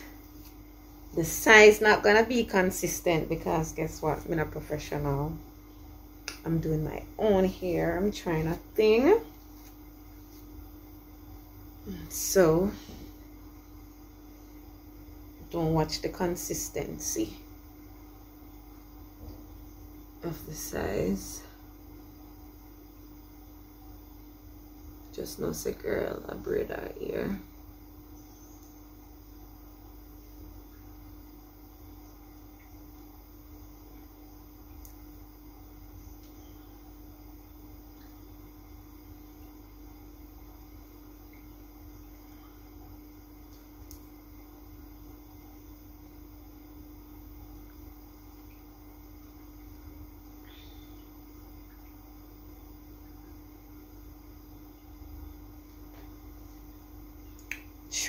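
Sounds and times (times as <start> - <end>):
low room hum: 0.0 - 58.0
faint soft ticks: 34.8 - 35.0, 43.5 - 44.1.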